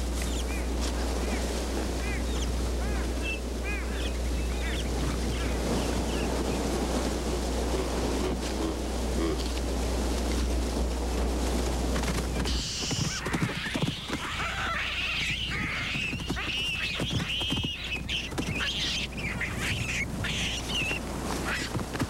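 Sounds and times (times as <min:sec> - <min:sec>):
baboons calling and screaming: 0:12.4 - 0:21.8.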